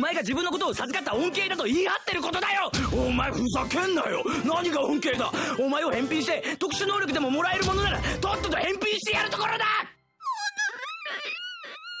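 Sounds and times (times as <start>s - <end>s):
girl crying and sobbing: 10.2s - 12.0s.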